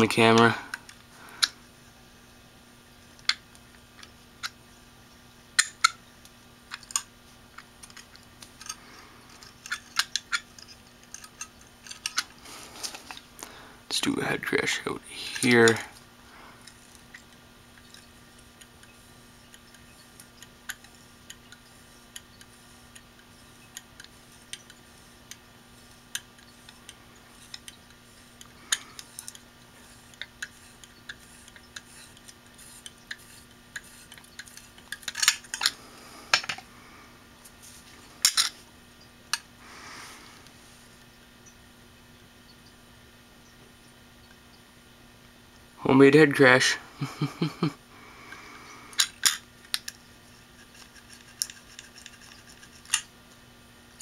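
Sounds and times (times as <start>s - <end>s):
head scraping disk platter: 17.8s - 36.6s.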